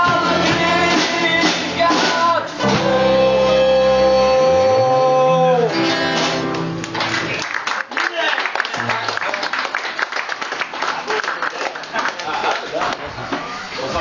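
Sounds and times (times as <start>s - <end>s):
man singing: 0.0s - 6.5s
acoustic guitars strumming: 0.0s - 7.4s.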